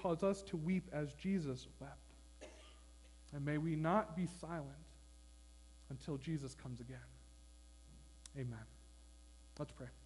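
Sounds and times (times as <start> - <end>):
low electrical hum: 0.0 - 10.0
person speaking: 3.2 - 5.0, 8.1 - 8.9, 9.5 - 10.0.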